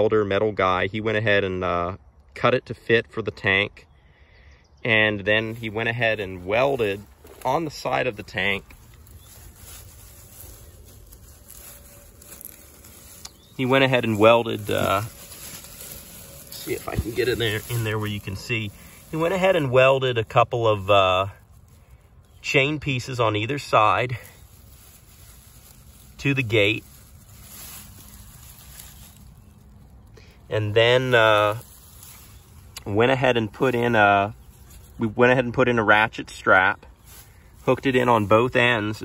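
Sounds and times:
outdoor background hiss: 0.0s - 39.0s
low background rumble: 4.1s - 35.3s
grass rustling: 4.9s - 39.0s.

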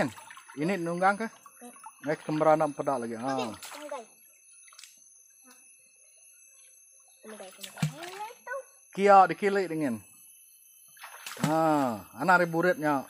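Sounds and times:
splashing shallow water: 0.0s - 3.9s, 7.4s - 8.4s, 11.0s - 11.8s
people talking: 0.0s - 4.1s, 7.3s - 10.0s, 11.5s - 13.0s.

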